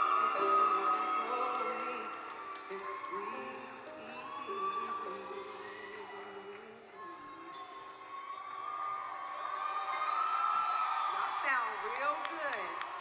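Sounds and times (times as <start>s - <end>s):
audience cheering and whooping: 0.0s - 13.0s.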